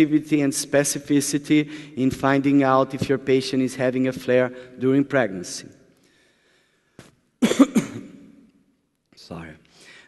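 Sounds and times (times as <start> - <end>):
man coughing: 7.4 - 8.4.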